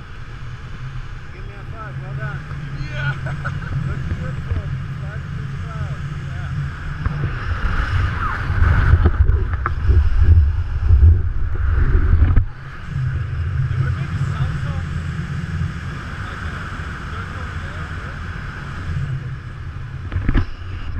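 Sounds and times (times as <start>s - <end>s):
wind buffeting microphone: 0.0s - 20.9s.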